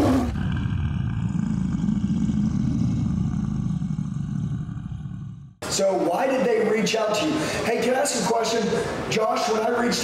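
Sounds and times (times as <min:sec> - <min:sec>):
lion roar: 0:00.0 - 0:05.6
long deep rumble: 0:00.0 - 0:05.6.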